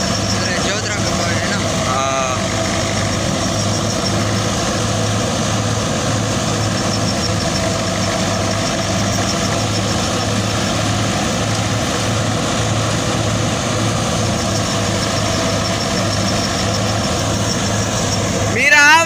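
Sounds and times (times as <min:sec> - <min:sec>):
thresher drum whirring: 0:00.0 - 0:19.0
tractor engine running under load: 0:00.0 - 0:19.0.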